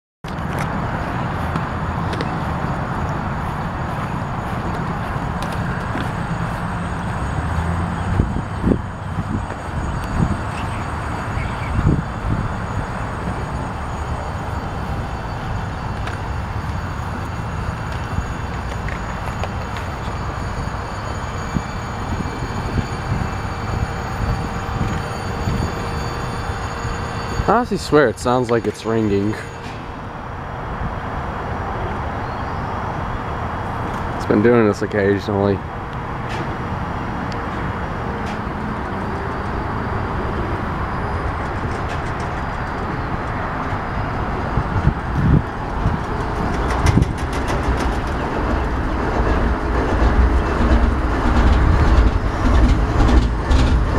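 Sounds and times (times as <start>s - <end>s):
locomotive diesel engine running: 0.3s - 53.9s
faint high ringing tone: 1.4s - 33.2s, 39.0s - 46.7s.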